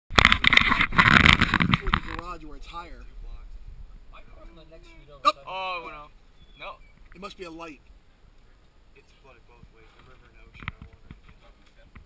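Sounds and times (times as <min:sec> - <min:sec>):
camera handling noise: 0:00.2 - 0:02.2.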